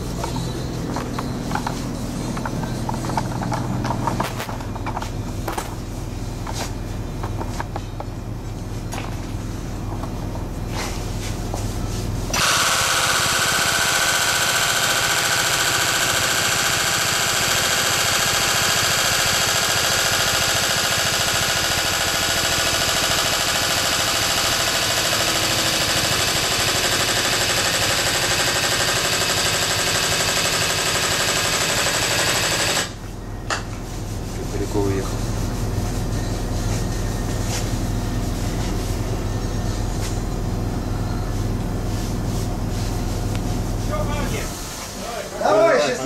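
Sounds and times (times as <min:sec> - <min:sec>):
pump rattling mechanically: 0:00.0 - 0:08.0, 0:12.3 - 0:33.0.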